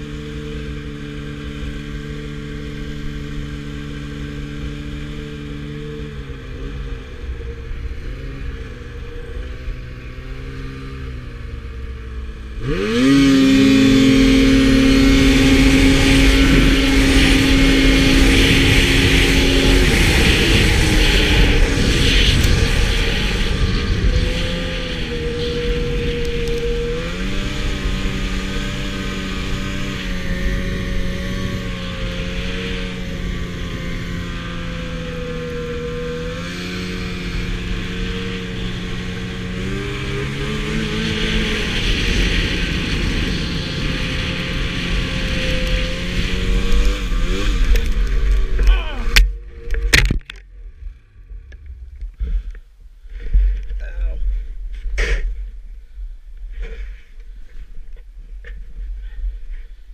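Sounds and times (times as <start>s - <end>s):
snowmobile engine revving: 0.0s - 50.1s.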